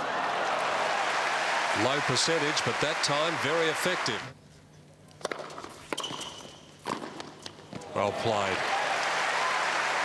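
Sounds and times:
shoe squeak: 0:05.9 - 0:06.8.

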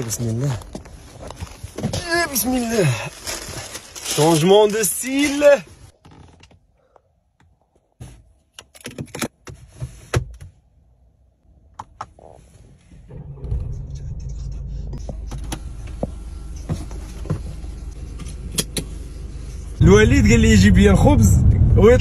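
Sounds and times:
car running from inside cabin: 0:13.1 - 0:22.0
sharp clicks of car controls: 0:18.2 - 0:19.0.

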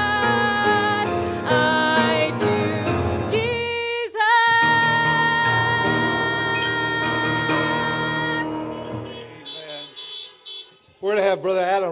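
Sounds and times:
car horns honking: 0:05.7 - 0:11.1.

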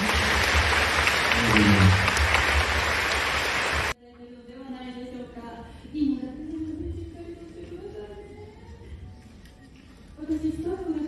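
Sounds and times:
audience applause: 0:00.0 - 0:04.0.

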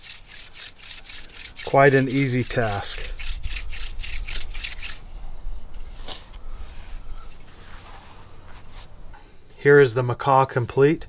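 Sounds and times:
drill rasping into stone: 0:00.0 - 0:05.0
stone scrapes: 0:00.0 - 0:08.9.

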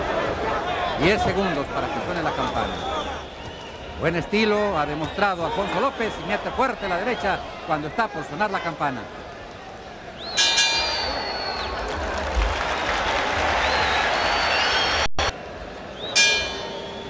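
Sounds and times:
crowd noise: 0:00.0 - 0:17.0
boxing bell ringing: 0:10.4 - 0:11.4, 0:16.2 - 0:16.9
applause: 0:11.4 - 0:15.1.

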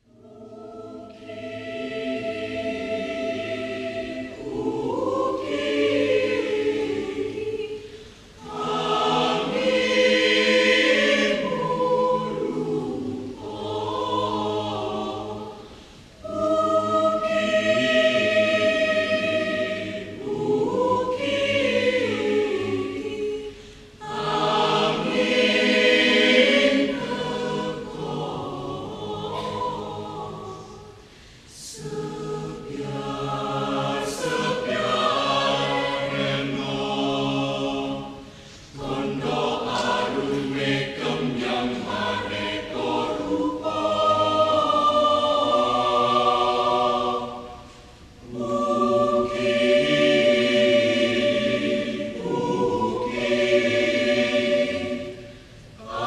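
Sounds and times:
choir singing folk song: 0:00.0 - 0:56.0.

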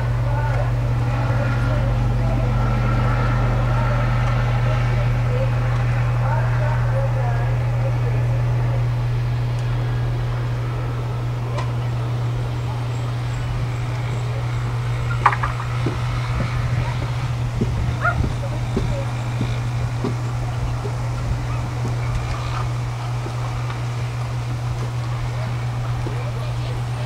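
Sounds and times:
faint indistinct voices: 0:00.0 - 0:27.0
steady low hum: 0:00.0 - 0:27.0.

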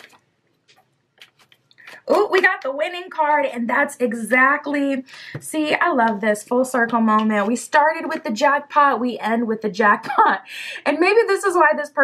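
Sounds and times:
cards clicking and rustling: 0:00.0 - 0:02.5.

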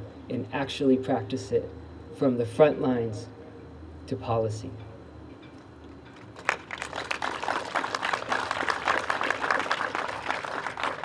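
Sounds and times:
audience clapping: 0:06.2 - 0:11.0.

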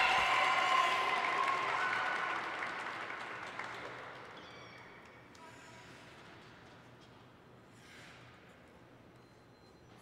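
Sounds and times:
audience applause: 0:00.0 - 0:04.2.

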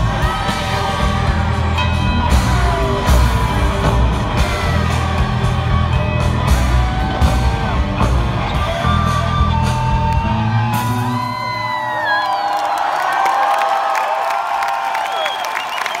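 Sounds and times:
live rock band playing: 0:00.0 - 0:12.1
crowd cheering and whooping: 0:00.0 - 0:16.0.

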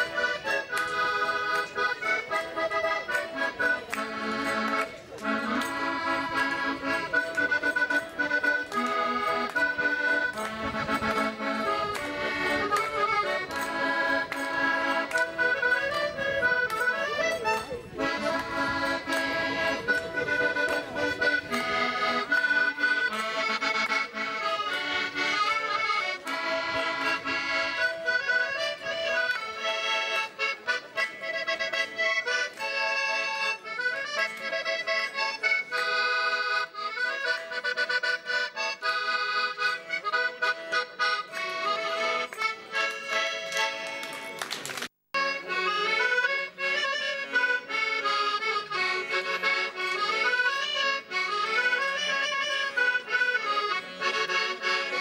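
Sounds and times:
accordion folk dance tune: 0:00.0 - 0:55.0.

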